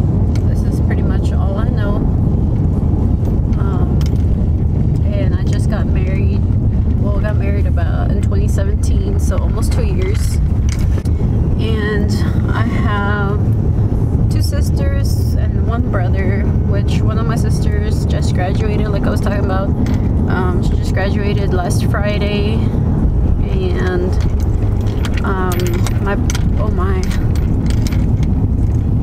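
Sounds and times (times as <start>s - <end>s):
car road and engine rumble: 0.0s - 29.0s
woman talking: 0.4s - 2.1s, 3.6s - 4.1s, 5.0s - 10.5s, 11.6s - 13.5s, 14.3s - 22.8s, 23.4s - 24.4s, 25.0s - 27.4s.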